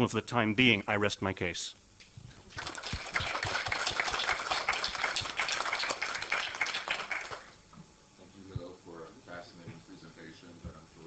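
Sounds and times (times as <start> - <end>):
audience applauding: 2.5 - 7.5.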